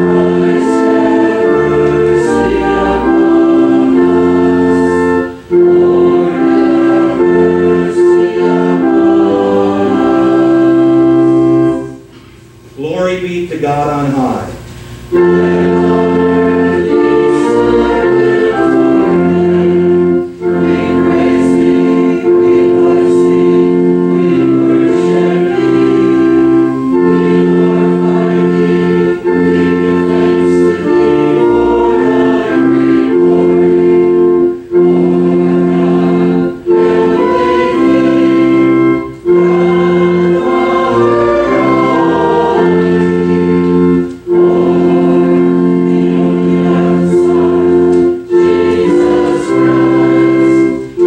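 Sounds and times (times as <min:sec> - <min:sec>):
congregation singing a hymn: 0:00.0 - 0:12.3, 0:12.9 - 0:51.0
organ: 0:00.0 - 0:51.0.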